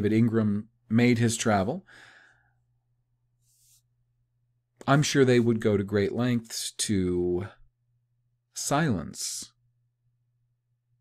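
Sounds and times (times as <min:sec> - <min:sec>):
faint breathing: 0:01.8 - 0:02.7
short faint in-breath: 0:01.9 - 0:02.6.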